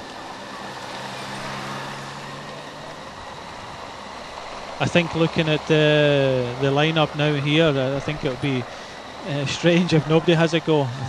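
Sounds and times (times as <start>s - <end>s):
engine hum: 0.0s - 11.0s
outdoor noise: 0.0s - 11.0s.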